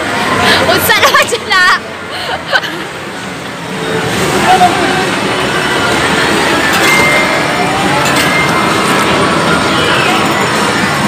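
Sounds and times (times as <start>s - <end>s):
arcade game machines and crowd noise: 0.0s - 11.0s.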